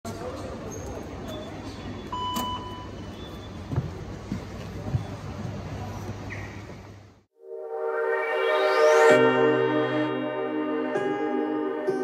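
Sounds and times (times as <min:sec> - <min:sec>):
card reader beep: 0:02.1 - 0:03.5.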